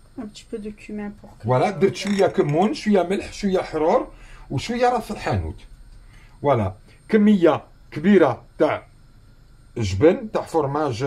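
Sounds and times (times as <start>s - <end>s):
person speaking: 1.2s - 4.1s.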